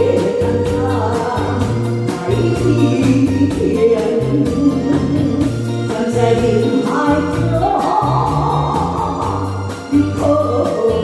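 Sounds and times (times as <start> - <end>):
bass line: 0.0 - 11.0
drum kit beat with cymbals: 0.0 - 11.0.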